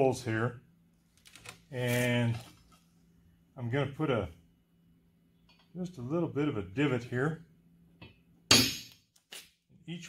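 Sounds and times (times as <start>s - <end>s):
hammer striking center punch on steel: 8.5s - 9.0s.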